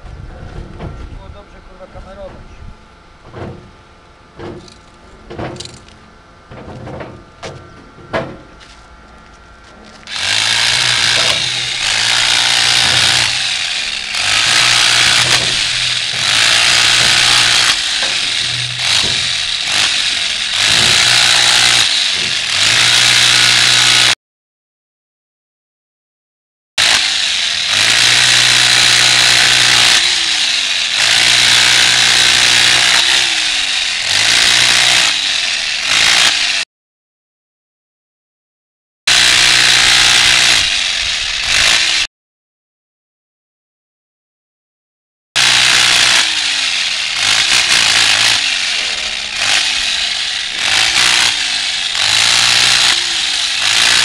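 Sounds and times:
electric hammer pounding stone: 10.0 - 24.2, 26.8 - 36.6, 39.1 - 42.1, 45.4 - 54.0.

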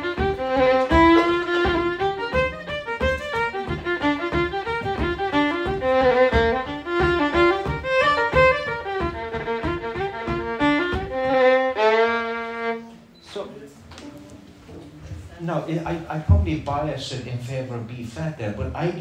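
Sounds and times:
solo fiddle melody: 0.0 - 13.0.

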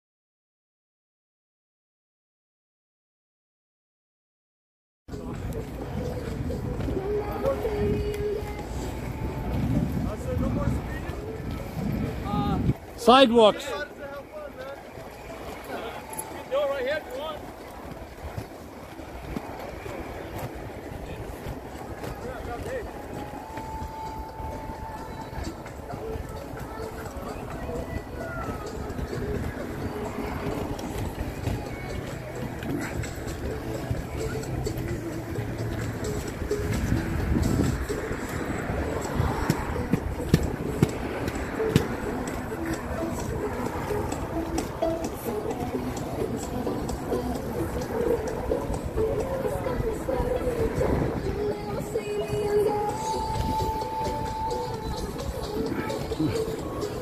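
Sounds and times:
inline skate wheels rolling on concrete: 5.1 - 13.0, 13.6 - 57.0.

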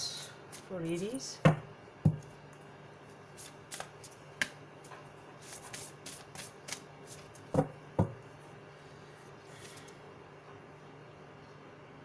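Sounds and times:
cards being shuffled: 3.4 - 4.6, 5.4 - 7.5.

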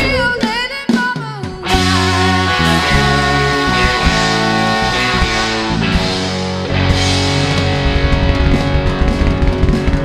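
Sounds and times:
drum kit: 0.0 - 10.0
electric guitar: 0.0 - 10.0
bass guitar: 1.5 - 10.0.

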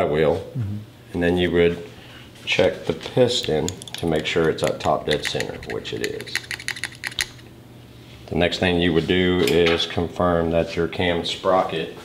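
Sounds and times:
tool tapping on metal: 3.4 - 7.4.

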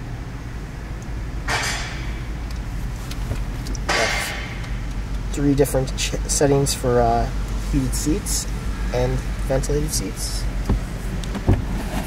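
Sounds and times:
car engine idling hum: 0.0 - 12.0.

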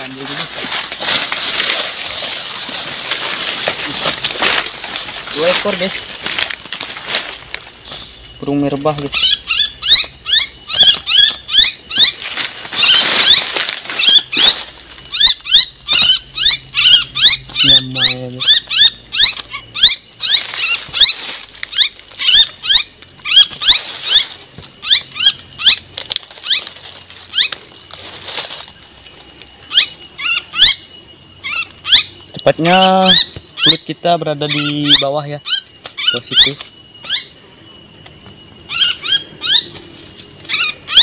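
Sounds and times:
insects buzzing: 0.0 - 41.0
small bird calling: 7.8 - 27.8, 29.6 - 37.5, 38.6 - 41.0.

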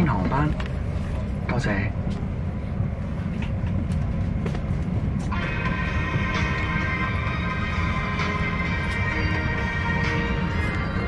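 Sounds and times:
airliner engine and air rumble: 0.0 - 11.0.

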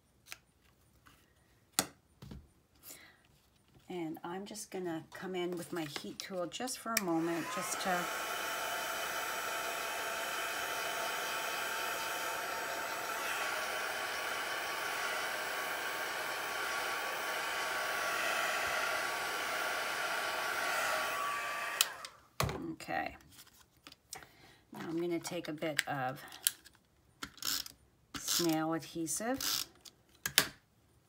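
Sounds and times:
heat tool blowing air: 7.0 - 22.2.

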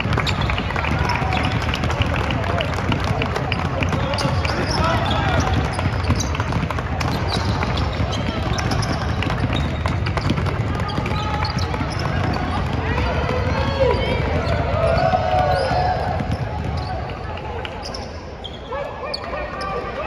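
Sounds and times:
basketballs bouncing on hardwood: 0.0 - 17.0.

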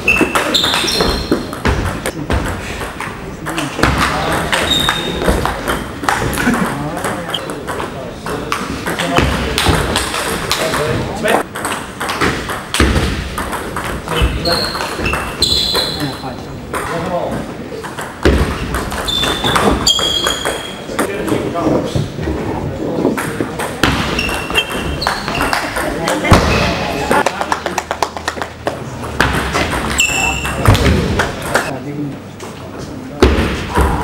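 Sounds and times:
people talking: 0.1 - 11.6, 13.9 - 18.0, 19.1 - 34.0.

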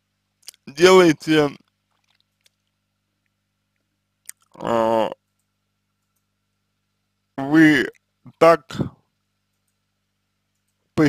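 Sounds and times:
faint electrical hum: 0.0 - 11.0
man's hesitation sound: 4.3 - 5.3.

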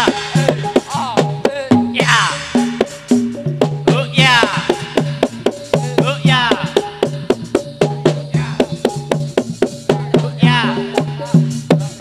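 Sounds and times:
gamelan drums and metal percussion: 0.0 - 12.0.

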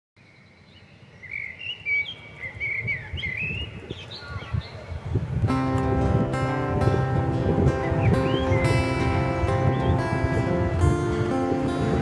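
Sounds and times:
birds chirping: 0.2 - 11.9.

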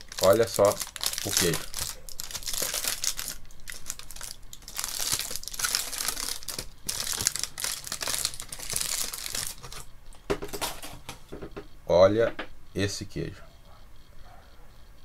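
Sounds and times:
foil wrapper crinkling: 0.0 - 11.2.

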